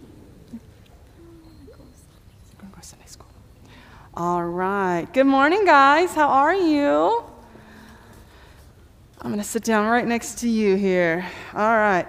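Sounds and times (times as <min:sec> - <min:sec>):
low room hum: 0:00.0 - 0:12.0
hushed voices whispering: 0:00.5 - 0:03.6.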